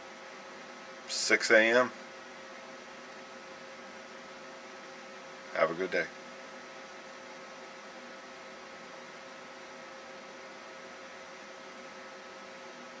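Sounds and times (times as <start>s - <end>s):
faint electrical hum: 0.0s - 13.0s
steady hiss: 0.0s - 13.0s.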